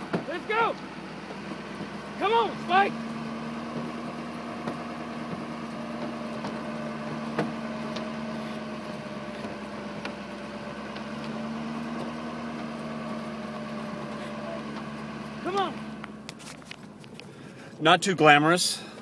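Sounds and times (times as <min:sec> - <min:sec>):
truck engine running: 0:00.0 - 0:19.0.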